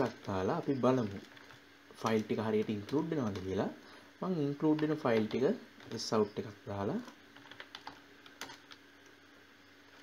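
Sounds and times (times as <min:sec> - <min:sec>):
keyboard keystrokes: 0:07.0 - 0:08.8.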